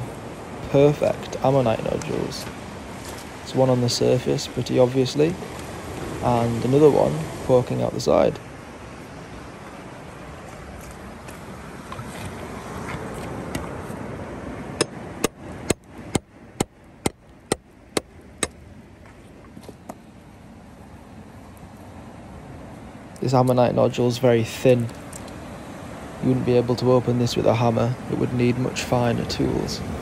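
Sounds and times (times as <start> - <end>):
hammer striking chisel: 14.8 - 18.6.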